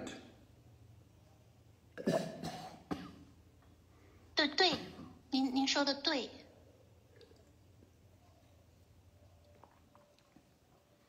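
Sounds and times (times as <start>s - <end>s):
person coughing: 2.0s - 3.3s.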